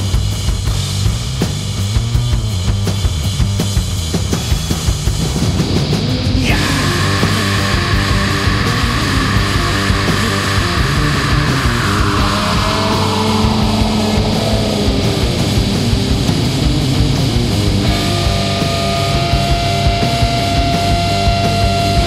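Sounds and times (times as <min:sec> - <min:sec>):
hard rock instrumental: 0:00.0 - 0:22.0
downward pitch sweep: 0:06.2 - 0:17.1.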